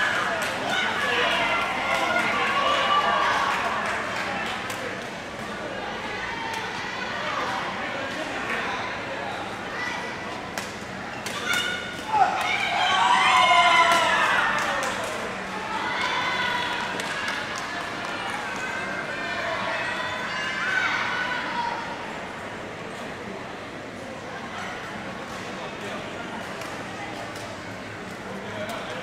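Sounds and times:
voices in a hall: 0.0 - 29.0.

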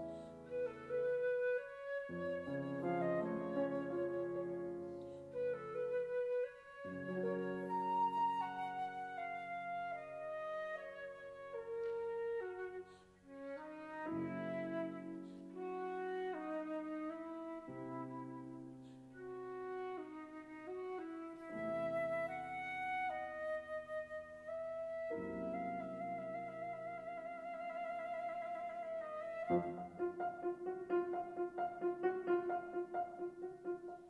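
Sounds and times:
flute melody: 0.0 - 34.0
grand piano chords: 0.0 - 34.0.

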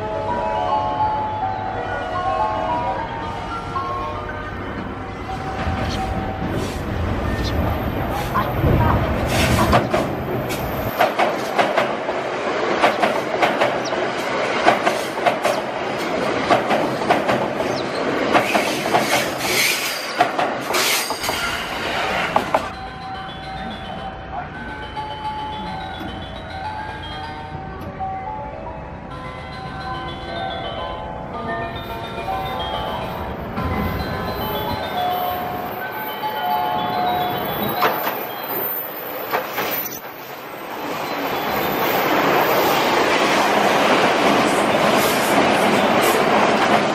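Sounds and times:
electric trains passing at speed: 0.0 - 46.9
wheels clattering over rail joints: 7.5 - 22.8.

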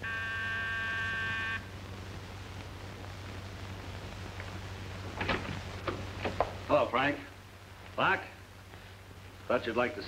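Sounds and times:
electric door buzzer: 0.0 - 1.6.

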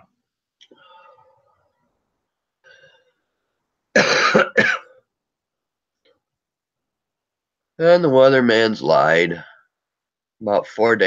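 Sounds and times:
person laughing or coughing: 4.0 - 4.9.

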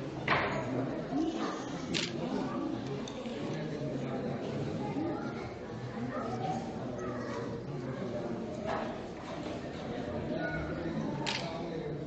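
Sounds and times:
low voices talking: 0.0 - 12.0.

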